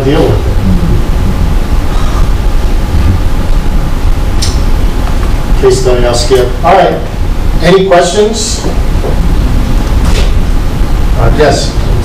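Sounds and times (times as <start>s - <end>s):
loud low rumble: 0.0s - 12.0s.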